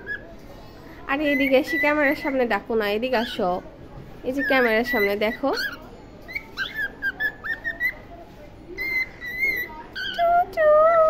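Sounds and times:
cockatiel whistling: 6.3s - 8.0s, 8.8s - 10.2s.

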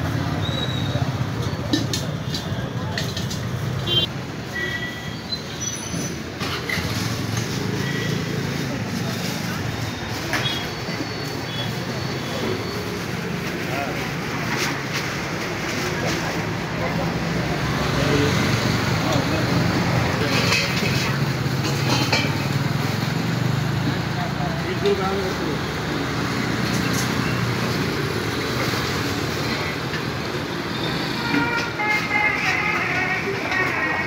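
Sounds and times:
traffic hum: 0.0s - 34.0s.

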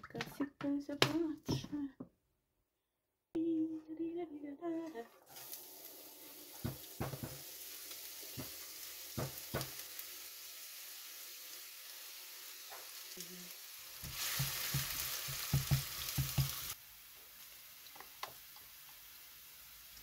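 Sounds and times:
onion sizzling in hot oil: 5.2s - 20.0s.

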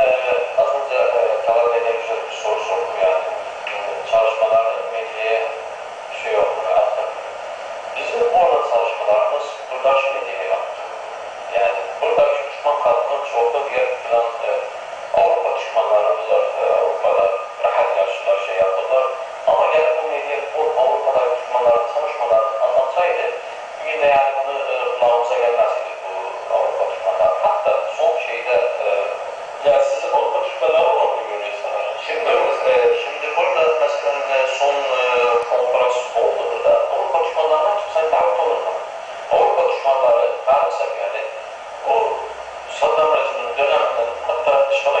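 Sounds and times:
man speaking through tinny speakers: 0.0s - 45.0s.

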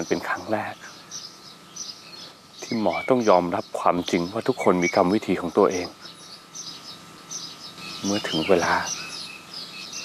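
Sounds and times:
faint outdoor background: 0.0s - 10.0s
small birds chirping: 0.0s - 10.0s.

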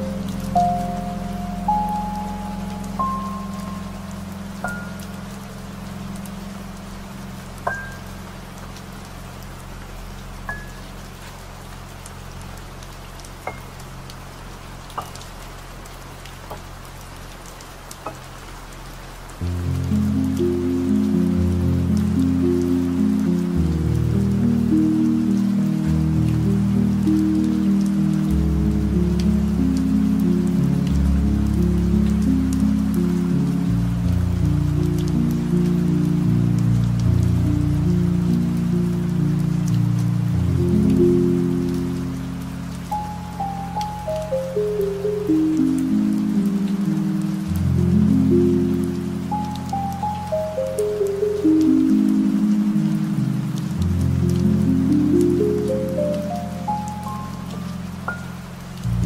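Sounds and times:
deep ambient music: 0.0s - 16.3s, 19.4s - 59.0s
steady rain: 0.0s - 59.0s.

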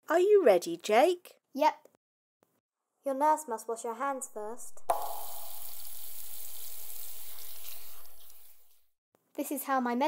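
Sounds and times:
tap water running into sink: 4.9s - 8.6s
hands washing under water: 4.9s - 8.8s.

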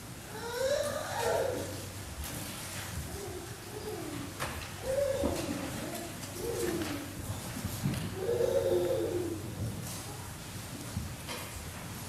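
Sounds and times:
small child babbling: 0.3s - 1.8s, 3.1s - 7.1s, 8.2s - 9.4s.

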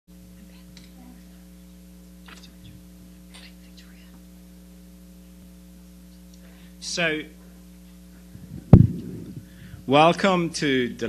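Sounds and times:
electrical hum: 0.1s - 11.0s
microphone rustling: 7.4s - 9.9s
microphone thump: 8.4s - 9.9s.

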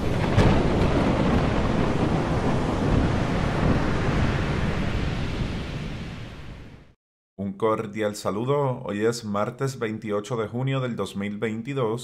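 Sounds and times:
heavy surf: 0.0s - 6.8s
wind: 0.0s - 6.9s.

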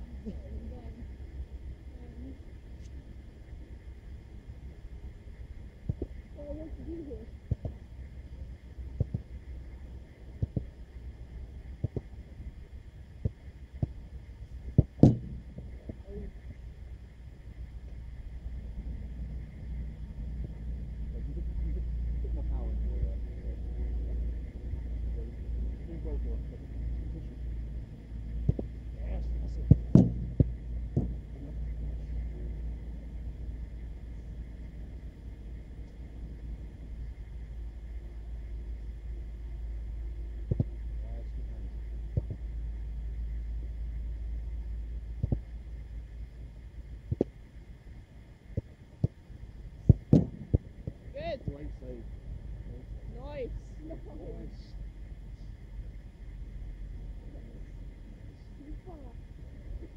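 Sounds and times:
steady low rumble: 0.0s - 59.9s
football being struck: 14.8s - 15.5s, 29.7s - 31.2s, 49.9s - 50.6s
faint indistinct voices: 20.5s - 30.0s.

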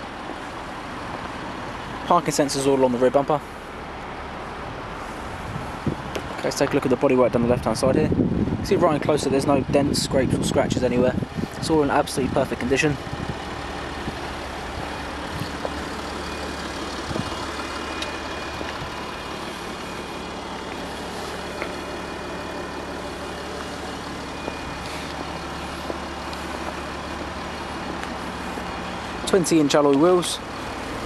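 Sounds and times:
engine idling: 10.7s - 31.0s.

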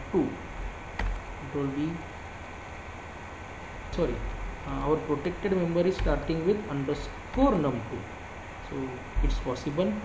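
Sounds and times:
low hum: 0.0s - 10.0s
steady hiss: 0.0s - 10.0s.

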